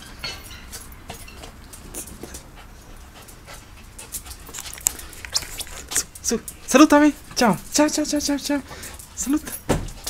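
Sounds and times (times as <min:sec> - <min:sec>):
dog panting: 0:00.8 - 0:10.0.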